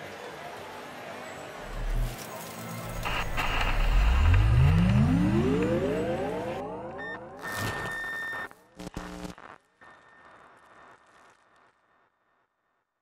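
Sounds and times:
rising electronic hum: 0:01.6 - 0:02.2, 0:02.8 - 0:07.9
stuttering electronic buzzes: 0:01.6 - 0:12.2
static burst with high tone: 0:01.6 - 0:12.4.

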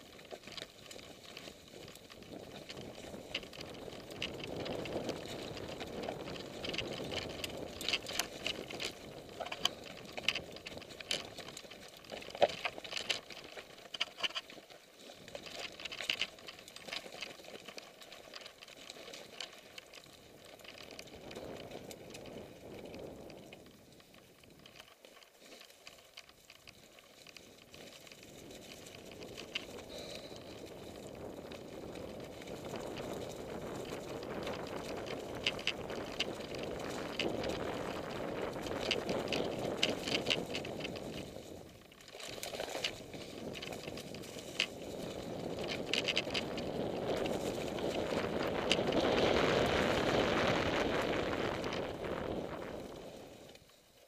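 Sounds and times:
rush of tyre and wind noise: 0:00.0 - 0:12.2, 0:20.0 - 0:24.8, 0:27.7 - 0:53.7
bike rattling clicks and knocks: 0:00.0 - 0:54.0
bike tyres rolling over leaves: 0:00.0 - 0:54.0.

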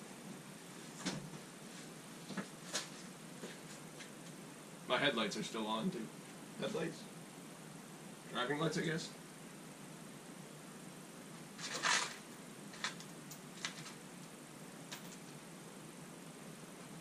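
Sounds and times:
low room hum: 0:00.0 - 0:17.0
plastic packaging rustling: 0:11.6 - 0:14.0.

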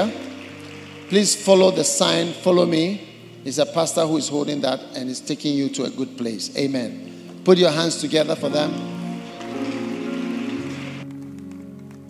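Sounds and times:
congregation applauding: 0:00.0 - 0:03.0, 0:07.1 - 0:12.0
soft sustained background music: 0:00.0 - 0:12.0.

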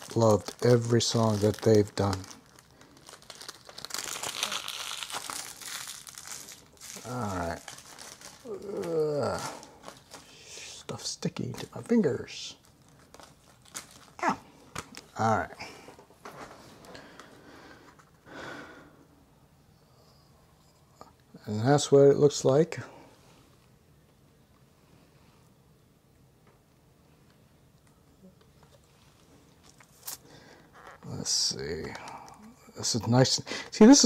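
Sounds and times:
plastic packaging crinkling: 0:00.0 - 0:17.3.

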